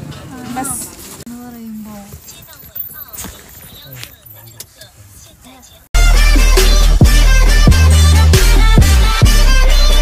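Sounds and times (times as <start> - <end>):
loud music: 6.0 - 10.0.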